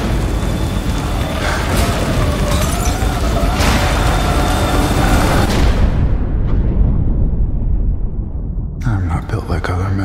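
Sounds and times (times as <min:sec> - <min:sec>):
cinematic explosion roar: 0:00.0 - 0:09.4
deep low rumble: 0:00.0 - 0:10.0.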